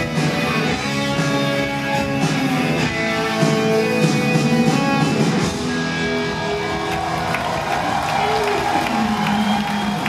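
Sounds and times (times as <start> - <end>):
crowd cheering and applauding: 5.6 - 10.0.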